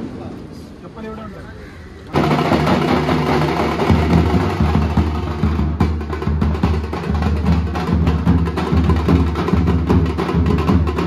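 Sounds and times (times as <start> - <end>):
drums beaten with sticks: 2.1 - 11.0.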